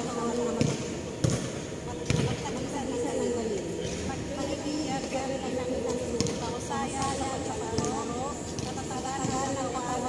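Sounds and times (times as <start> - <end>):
basketball bouncing on hard court: 0.5 - 2.4, 6.2 - 9.7.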